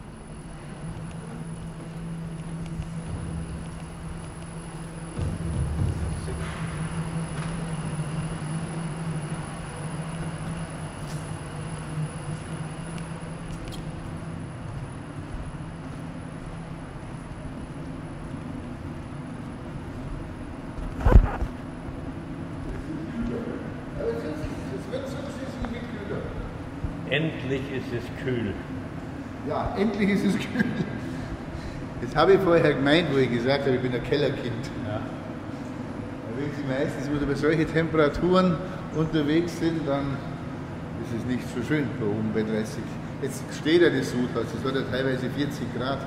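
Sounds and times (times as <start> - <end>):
machinery humming: 0.0 - 46.0
loud thump: 5.1 - 6.8.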